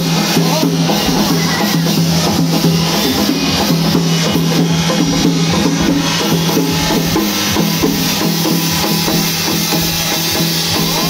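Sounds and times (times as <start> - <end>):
drums beaten in fast rhythm: 0.0 - 11.0.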